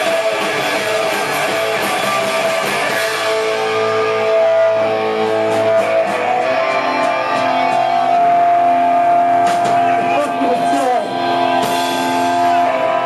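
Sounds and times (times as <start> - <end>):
electric guitar chords: 0.0 - 13.0
live rock band playing: 0.0 - 13.0.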